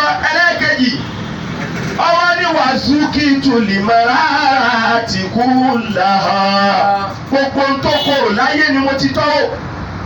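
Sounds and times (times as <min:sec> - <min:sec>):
man preaching in half-sung chant: 0:00.0 - 0:01.1, 0:02.0 - 0:09.6
rushing background noise: 0:00.0 - 0:10.0.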